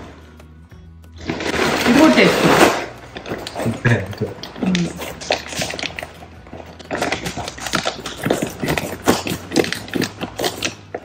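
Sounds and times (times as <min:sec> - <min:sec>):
plastic bag crinkling: 0:01.2 - 0:11.0
scissors cutting plastic: 0:01.4 - 0:11.0.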